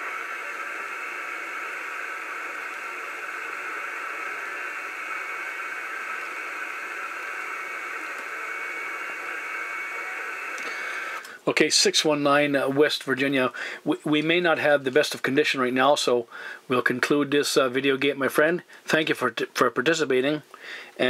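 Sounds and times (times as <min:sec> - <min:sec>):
radio static hiss: 0:00.0 - 0:21.0.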